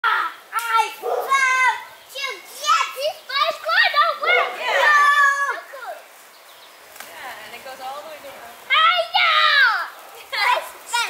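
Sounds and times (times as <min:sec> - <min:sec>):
children shouting and squealing: 0:00.0 - 0:06.3, 0:08.7 - 0:11.0.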